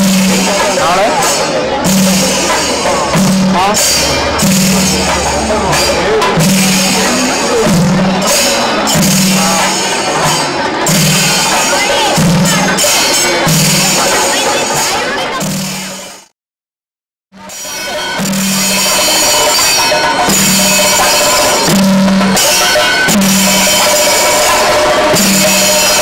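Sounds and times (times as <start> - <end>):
hand cymbals ringing: 0.0 - 16.0, 17.4 - 26.0
drums playing: 0.0 - 16.2, 17.4 - 26.0
crowd noise: 0.0 - 16.3, 17.4 - 26.0.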